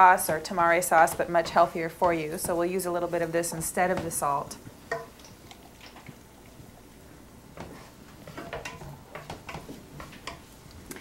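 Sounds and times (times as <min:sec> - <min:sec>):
wooden spatula scraping a pan: 0:00.0 - 0:05.0, 0:07.5 - 0:10.6.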